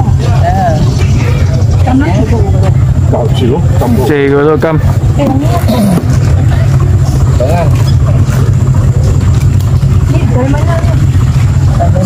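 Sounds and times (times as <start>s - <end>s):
loud low rumble: 0.0s - 12.0s.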